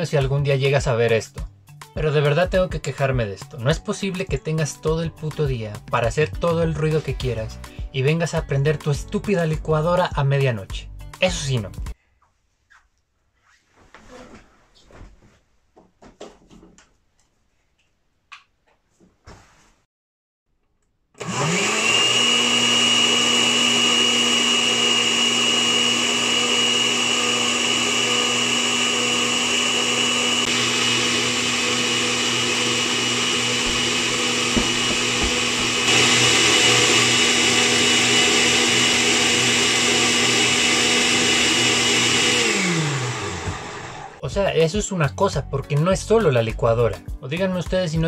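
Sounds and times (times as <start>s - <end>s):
blender motor whining: 21.2s - 44.2s.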